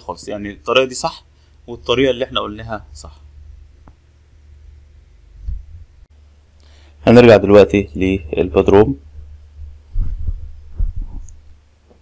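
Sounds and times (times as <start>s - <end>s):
steady low hum: 0.0s - 12.0s
soft low thumps: 3.4s - 6.1s, 9.0s - 12.0s.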